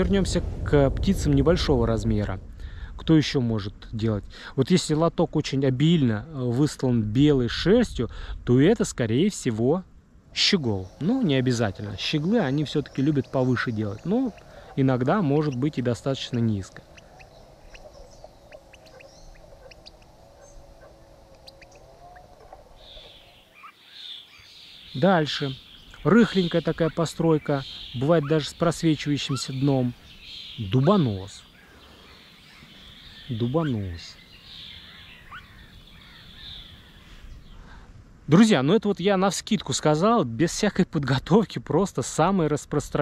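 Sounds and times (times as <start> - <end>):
low steady hum: 0.0 - 38.3
steady high hiss: 0.0 - 40.1
rough burst of high bird calls: 10.4 - 37.8
bird chirping high: 10.6 - 37.6.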